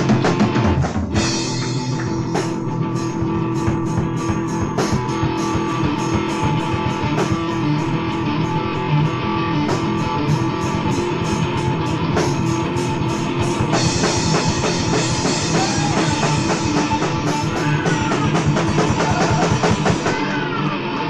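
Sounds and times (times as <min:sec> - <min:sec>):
drum kit cymbal strokes: 0:00.0 - 0:08.9, 0:09.6 - 0:20.1
bass guitar: 0:00.0 - 0:21.0
electric guitar: 0:00.0 - 0:21.0.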